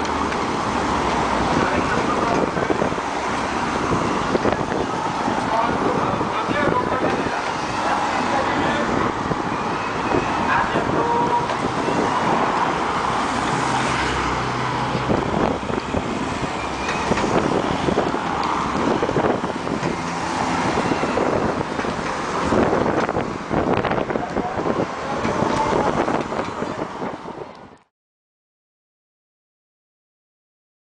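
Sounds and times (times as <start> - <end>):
cars driving past: 0.0 - 27.7
spectators chatting: 1.5 - 13.6, 23.9 - 27.1.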